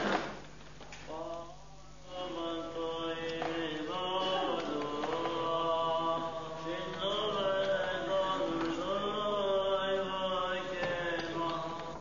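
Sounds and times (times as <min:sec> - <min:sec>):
church chant singing: 0:01.0 - 0:12.0.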